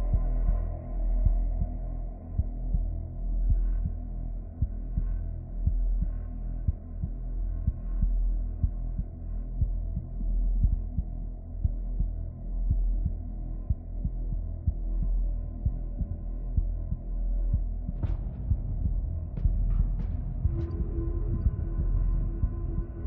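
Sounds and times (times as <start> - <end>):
low drone: 13.9 - 23.0.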